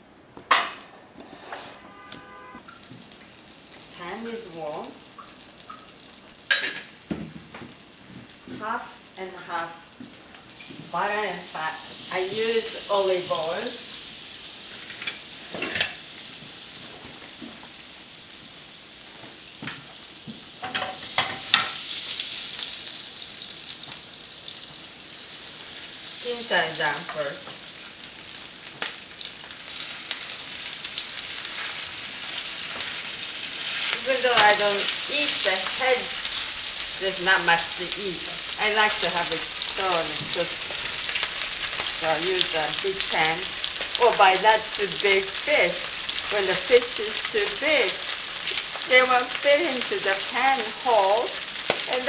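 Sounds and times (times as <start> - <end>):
fish sizzling in a pan: 2.6 - 52.0
metal cookware clanking: 6.5 - 6.9, 20.6 - 21.8.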